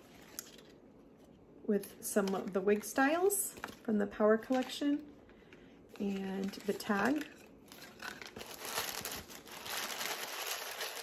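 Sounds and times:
tissue paper crinkling: 5.9s - 11.0s.

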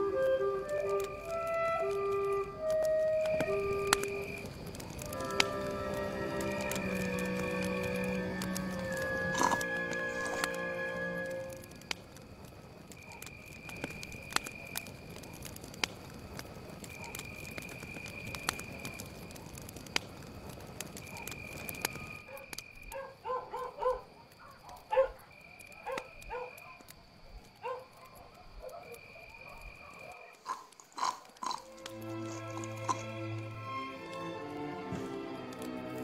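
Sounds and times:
film hiss with clicks: 0.0s - 9.1s, 11.2s - 23.0s
high animal calls: 30.2s - 33.1s.

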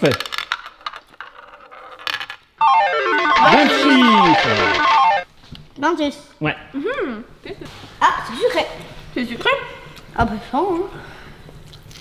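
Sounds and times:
musical jingle: 2.6s - 5.2s.

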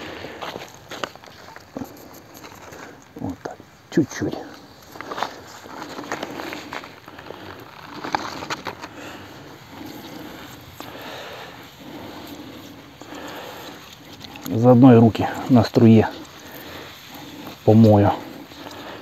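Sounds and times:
man talking: 3.2s - 4.6s, 14.5s - 16.2s, 17.6s - 18.2s
hose clicks and rustles: 4.6s - 19.0s
water spraying from hose: 9.0s - 19.0s.

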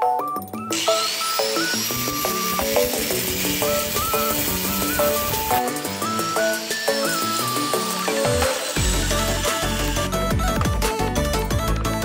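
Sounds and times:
background music: 0.0s - 12.0s
grinder cutting through chain: 0.7s - 10.6s.

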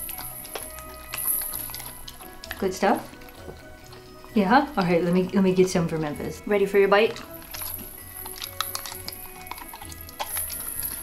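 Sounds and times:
background music: 0.0s - 11.0s
dog licking metal spoon: 0.0s - 11.0s.

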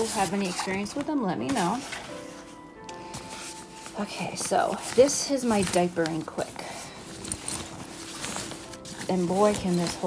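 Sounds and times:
fabric bag rustling: 0.0s - 10.0s.

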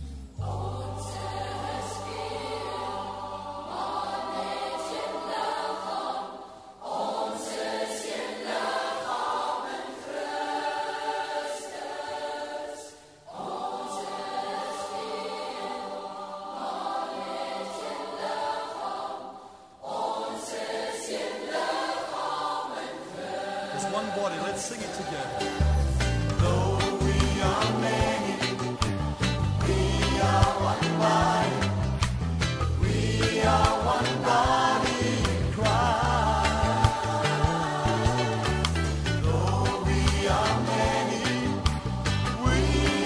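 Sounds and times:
choir singing worship song: 0.0s - 43.0s.

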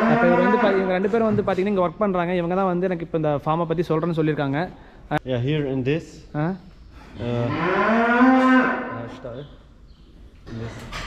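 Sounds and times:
calf mooing: 0.0s - 0.9s, 7.2s - 9.2s.

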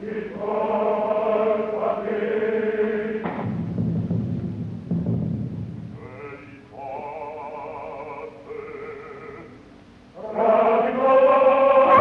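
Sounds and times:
orchestra and chorus: 0.0s - 3.5s, 6.0s - 12.0s
solo operatic voice: 6.0s - 12.0s.

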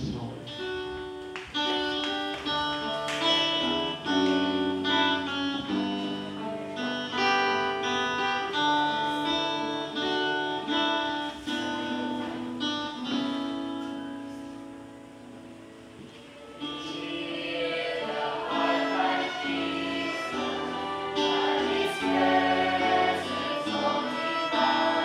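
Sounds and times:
acoustic guitar playing: 0.0s - 25.0s.

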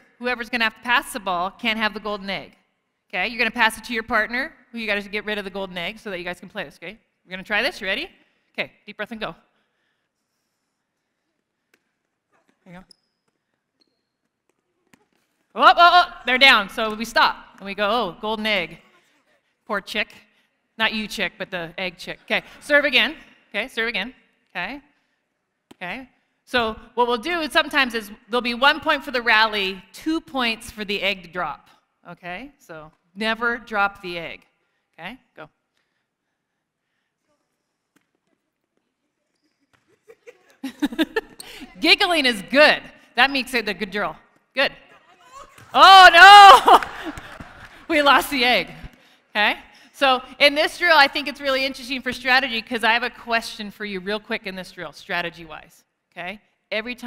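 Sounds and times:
hands slapping volleyball: 11.4s - 12.3s, 14.2s - 15.5s, 25.6s - 25.9s, 37.9s - 40.6s, 45.4s - 45.8s, 46.6s - 48.0s
volleyballs slapping hands: 11.4s - 12.3s, 45.4s - 45.8s, 46.5s - 49.1s
players giggling: 39.9s - 41.8s.

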